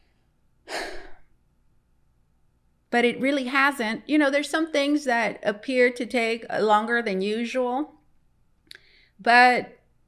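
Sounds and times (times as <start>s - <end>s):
woman sighing: 0.7s - 1.3s.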